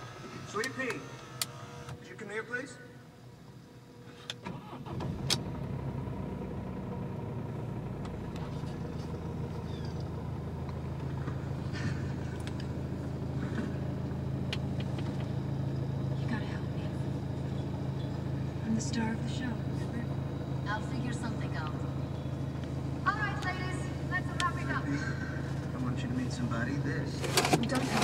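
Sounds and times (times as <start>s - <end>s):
diesel engine cranking: 0.0s - 2.1s, 4.0s - 28.0s
diesel engine idling: 0.0s - 28.0s.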